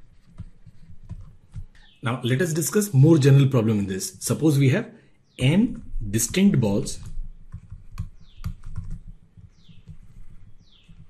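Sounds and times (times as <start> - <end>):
stylus tapping on tablet screen: 0.0 - 1.8, 5.6 - 11.0.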